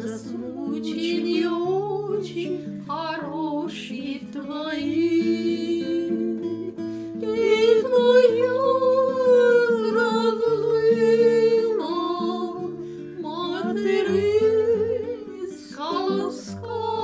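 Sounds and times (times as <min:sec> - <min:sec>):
acoustic guitar picking: 0:00.0 - 0:17.0
two women singing: 0:00.0 - 0:17.0.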